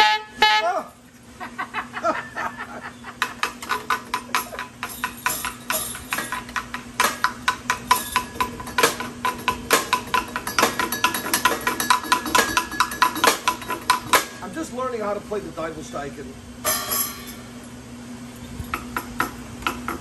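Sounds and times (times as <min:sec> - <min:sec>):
stick clacking and rattling: 0:03.2 - 0:14.4.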